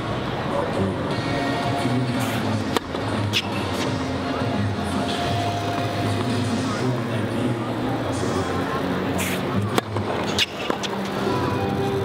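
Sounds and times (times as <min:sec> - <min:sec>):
background music: 0:00.0 - 0:12.0
faint talk: 0:00.2 - 0:10.4
racquet striking tennis ball: 0:02.7 - 0:04.0, 0:09.3 - 0:11.2.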